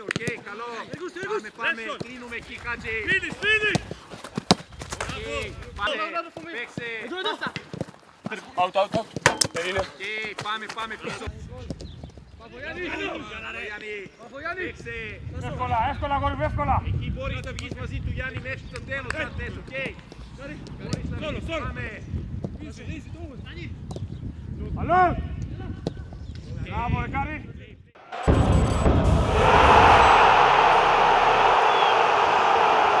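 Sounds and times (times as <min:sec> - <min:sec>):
loud steady rushing noise: 0:28.0 - 0:33.0
men shouting: 0:29.1 - 0:33.0.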